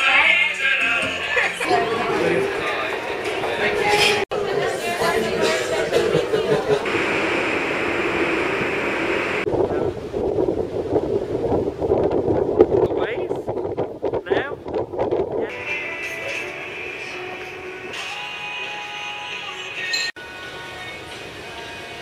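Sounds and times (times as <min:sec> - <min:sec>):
background music: 0:00.0 - 0:04.6, 0:15.5 - 0:22.0
sea rushing: 0:06.3 - 0:14.0
wind buffeting microphone: 0:06.7 - 0:15.6.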